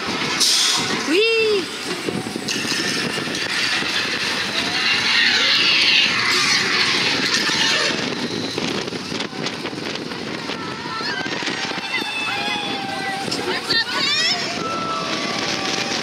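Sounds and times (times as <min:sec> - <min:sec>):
roller coaster rumbling on track: 0:00.0 - 0:16.0
rushing wind: 0:00.0 - 0:16.0.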